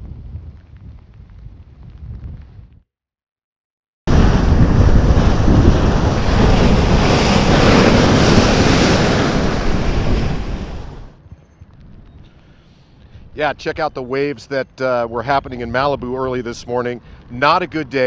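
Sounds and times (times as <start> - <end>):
heavy surf breaking: 4.1 - 11.2.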